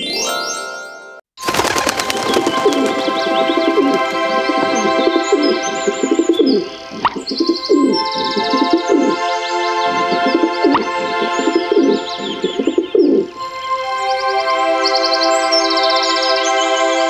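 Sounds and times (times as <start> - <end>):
background music: 1.5 - 17.0
birds cooing and chirping: 1.6 - 13.4.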